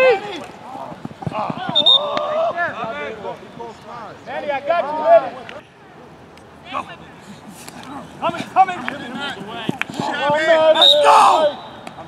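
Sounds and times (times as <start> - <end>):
players shouting: 0.0 - 5.6, 6.7 - 12.0.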